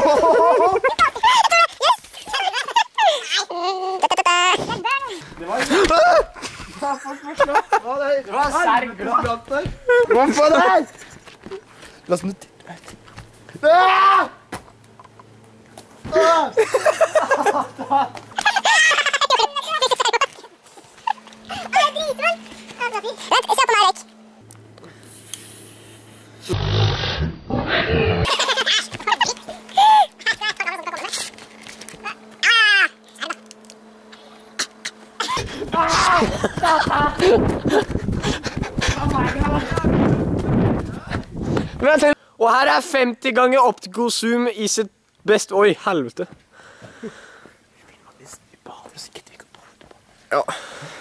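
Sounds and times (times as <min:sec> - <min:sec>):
young men calling out: 0:35.6 - 0:36.5.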